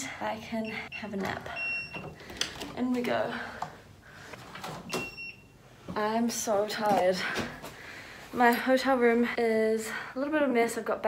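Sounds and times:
key-card lock beep: 0:01.6 - 0:02.2, 0:04.9 - 0:05.5.

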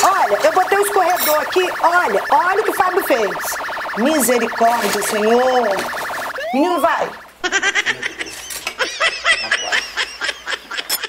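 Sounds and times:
woman laughing: 0:07.4 - 0:11.0.

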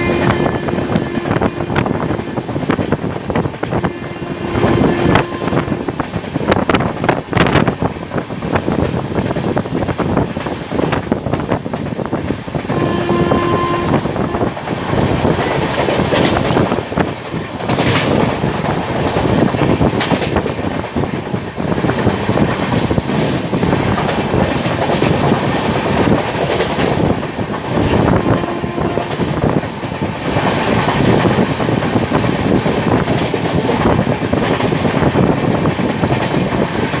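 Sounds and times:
train horn: 0:00.0 - 0:02.4, 0:03.7 - 0:06.0, 0:12.7 - 0:15.8, 0:28.0 - 0:29.6
train rushing roar: 0:00.0 - 0:37.0
wheels clacking over rail joints: 0:14.5 - 0:37.0.

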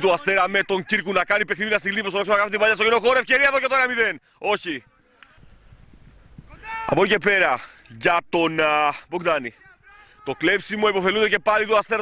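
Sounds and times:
man talking: 0:00.0 - 0:05.2, 0:06.5 - 0:12.0.

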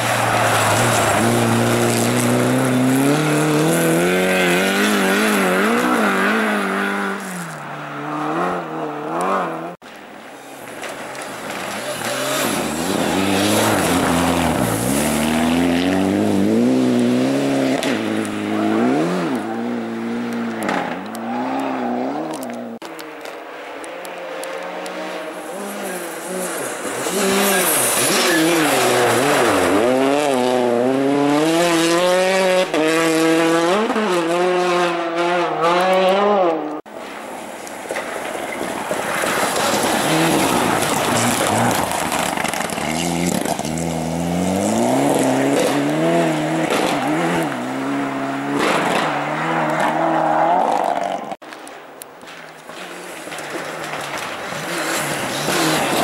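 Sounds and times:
rally car engines revving: 0:00.0 - 0:09.8, 0:10.8 - 0:36.9, 0:38.2 - 0:51.4, 0:52.8 - 0:56.0.

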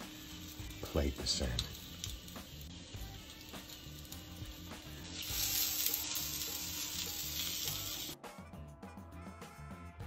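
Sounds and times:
food sizzling in a pan: 0:00.0 - 0:08.2
background music: 0:00.0 - 0:10.0.

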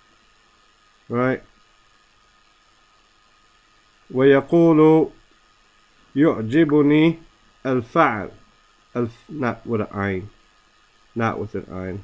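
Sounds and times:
faint recording hiss: 0:00.0 - 0:12.0.

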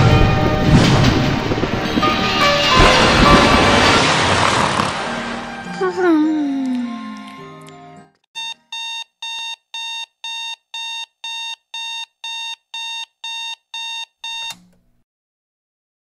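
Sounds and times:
background music: 0:00.0 - 0:08.2
alarm clock beeping: 0:08.4 - 0:14.6.

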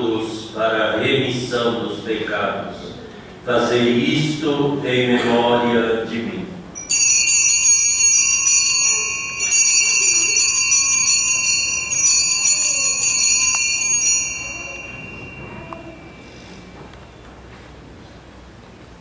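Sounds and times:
altar bells jingling: 0:06.8 - 0:16.9.

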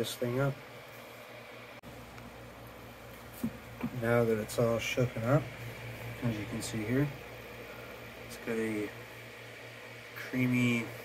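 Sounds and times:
small fan humming: 0:00.0 - 0:11.0.

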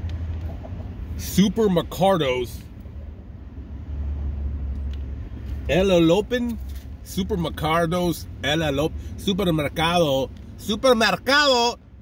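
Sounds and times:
vehicle engine rumble: 0:00.0 - 0:12.0.

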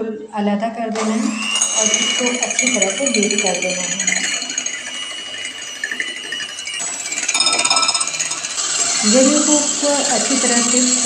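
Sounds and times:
electric hand mixer whining: 0:00.9 - 0:11.0.

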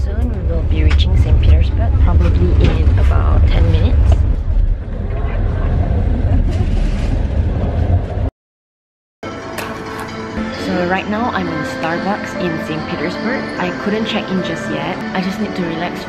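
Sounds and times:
voices: 0:00.0 - 0:04.2, 0:10.6 - 0:16.0
train carriage low rumble: 0:00.0 - 0:08.3.

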